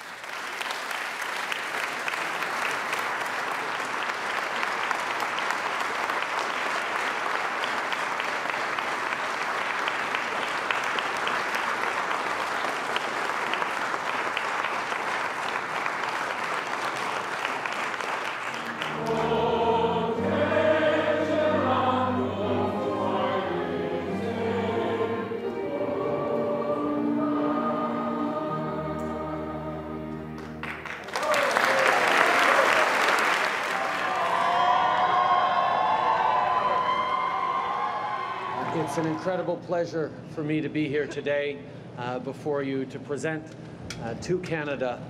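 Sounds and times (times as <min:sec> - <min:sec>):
audience applause: 0:00.0 - 0:21.5, 0:30.4 - 0:39.4
choir singing with accompaniment: 0:18.6 - 0:30.6.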